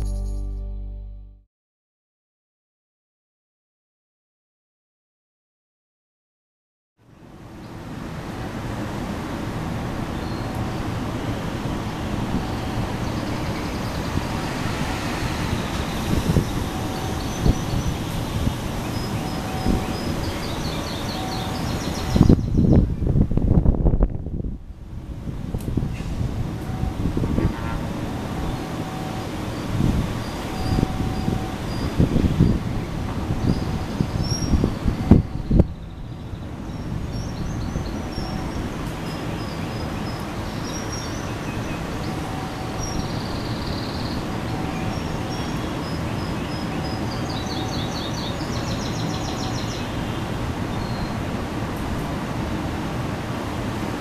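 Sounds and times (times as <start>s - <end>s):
wheels rumbling on rails: 10.9s - 21.8s.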